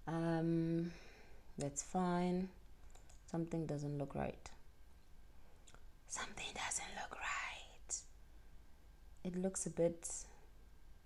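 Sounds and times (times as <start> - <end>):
person whispering: 6.1 - 8.0.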